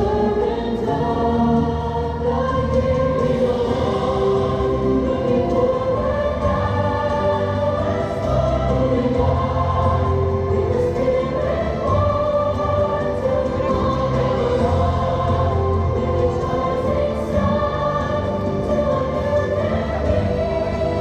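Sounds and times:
choir singing held notes: 0:00.0 - 0:21.0
steady musical accompaniment: 0:00.0 - 0:21.0.

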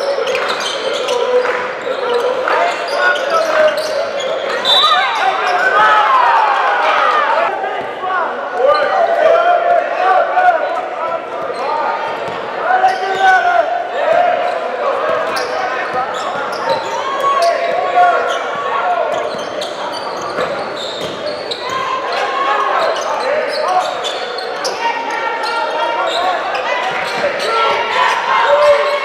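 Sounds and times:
voices echoing in hall: 0:00.0 - 0:29.0.

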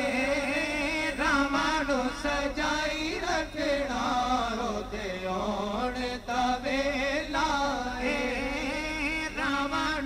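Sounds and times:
men singing together: 0:00.0 - 0:10.0.

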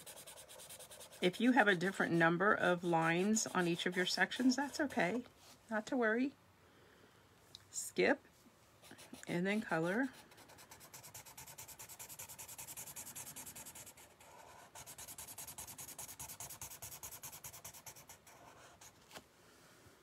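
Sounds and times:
marker scratching on paper: 0:00.0 - 0:05.2, 0:08.8 - 0:19.0.

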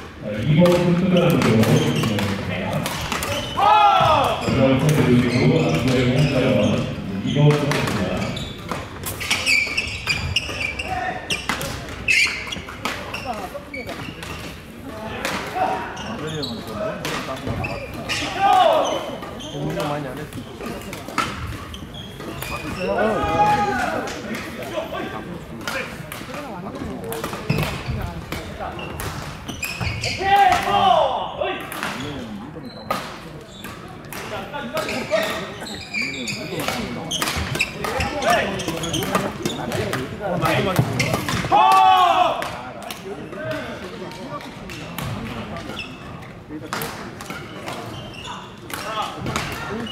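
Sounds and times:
voices echoing in hall: 0:00.0 - 0:49.9
rackets striking shuttlecocks: 0:00.6 - 0:06.3, 0:36.4 - 0:48.0, 0:48.6 - 0:49.9.

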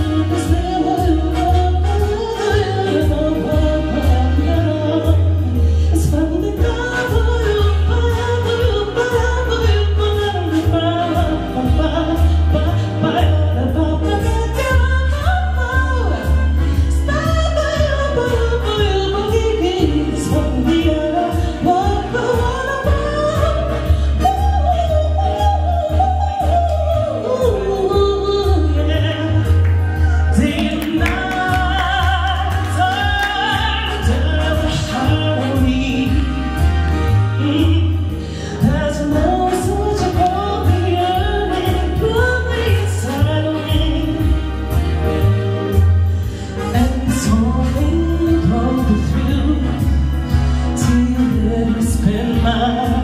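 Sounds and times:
woman singing into a microphone: 0:00.0 - 0:45.0, 0:45.7 - 0:53.0
backing music with deep bass: 0:00.0 - 0:53.0.

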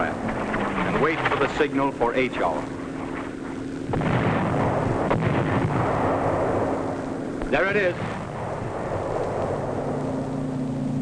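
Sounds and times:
sharp gun report: 0:00.0 - 0:09.7
deep gunfire boom and rumble: 0:00.0 - 0:10.6.

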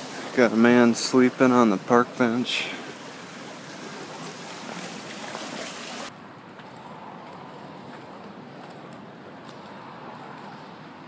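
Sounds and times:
running water rushing: 0:00.0 - 0:06.1.

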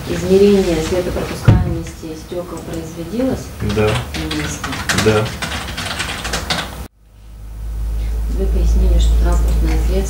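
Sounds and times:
keyboard typing clicks: 0:03.6 - 0:06.8
low hum: 0:06.9 - 0:10.0.

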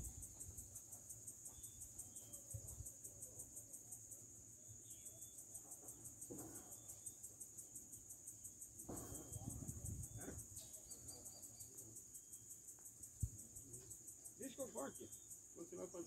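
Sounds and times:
insects chirping: 0:00.0 - 0:16.0.

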